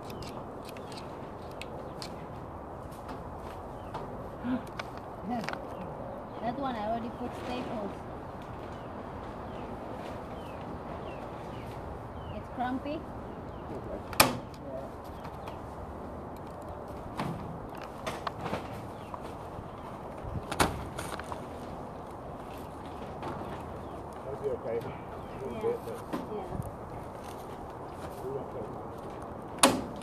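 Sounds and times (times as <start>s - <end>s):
steady background noise: 0.0s - 30.0s.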